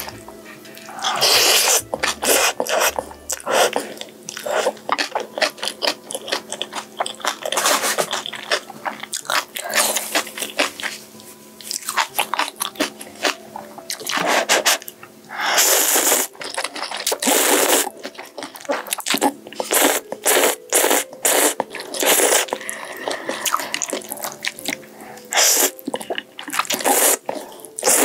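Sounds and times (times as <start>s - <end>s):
close-miked chewing with wet crunches: 0.7s - 11.0s, 11.6s - 14.9s, 15.6s - 28.0s.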